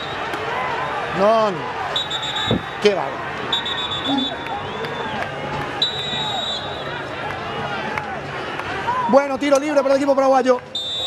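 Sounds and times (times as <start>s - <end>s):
shrill referee's whistle: 0.0s - 0.2s, 1.9s - 2.8s, 3.5s - 5.2s, 5.8s - 6.9s, 10.7s - 11.0s
stadium crowd noise: 0.0s - 11.0s.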